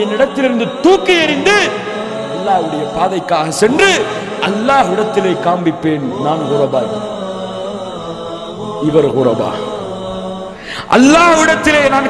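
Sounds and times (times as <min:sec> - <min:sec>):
man chanting: 0:00.0 - 0:07.6, 0:08.6 - 0:10.2, 0:10.8 - 0:12.0.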